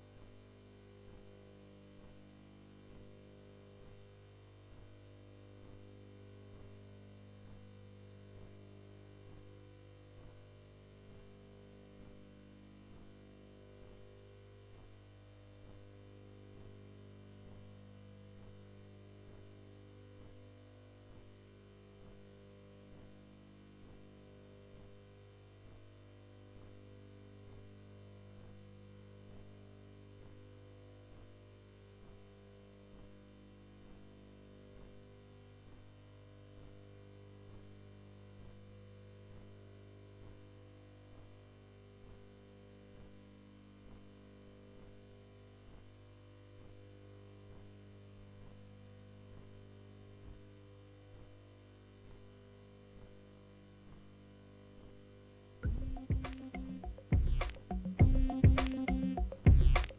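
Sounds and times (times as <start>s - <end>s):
electrical mains hum: 52.8s - 59.9s.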